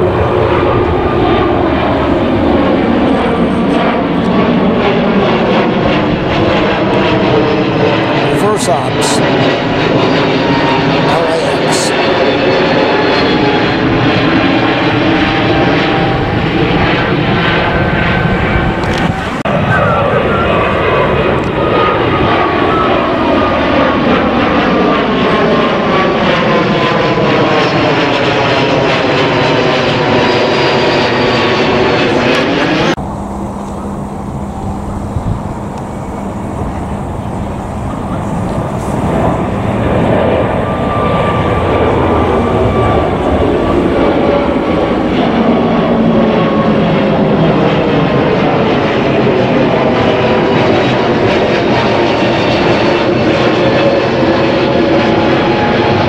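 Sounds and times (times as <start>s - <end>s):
jet airliners passing overhead: 0.0s - 56.0s.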